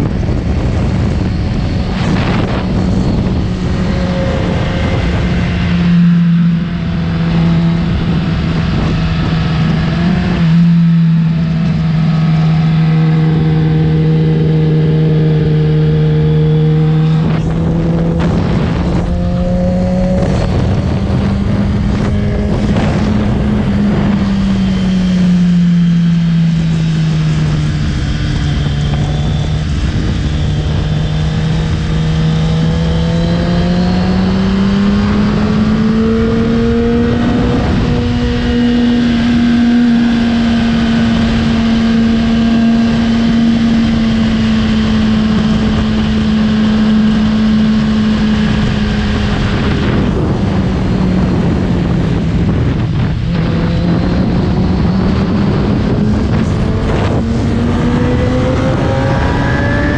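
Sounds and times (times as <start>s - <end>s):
motorcycle engine running: 0.0s - 59.9s
wind rushing across microphone: 0.0s - 59.9s.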